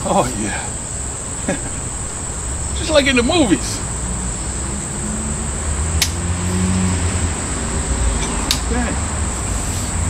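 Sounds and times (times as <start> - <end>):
high insect trill: 0.0 - 10.0
passing road traffic rumble: 0.0 - 10.0
sharp click: 6.0 - 6.2, 8.4 - 8.7.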